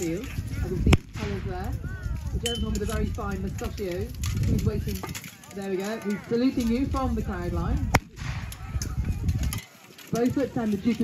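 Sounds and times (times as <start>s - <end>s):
gunshot crack: 8.0s - 8.5s.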